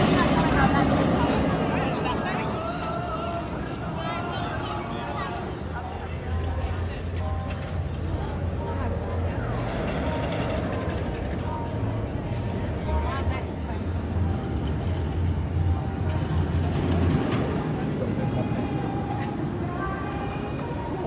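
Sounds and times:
roller coaster rumbling on track: 0:00.0 - 0:21.0
voices: 0:00.0 - 0:21.0
music: 0:02.0 - 0:21.0.

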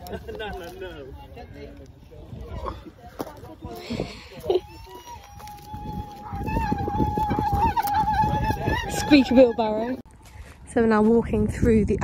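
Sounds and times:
footsteps on dry straw ground: 0:03.1 - 0:12.0.

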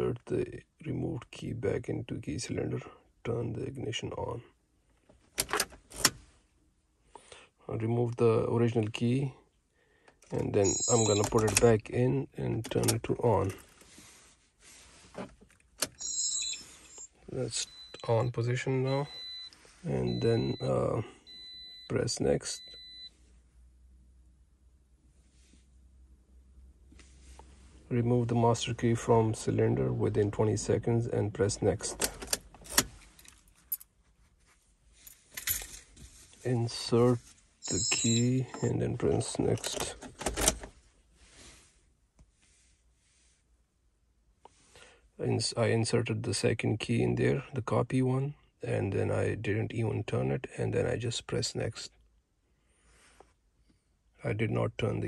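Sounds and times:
car keys jangling: 0:05.3 - 0:06.2, 0:10.3 - 0:11.8, 0:31.9 - 0:33.9, 0:35.0 - 0:35.9, 0:37.6 - 0:40.7.

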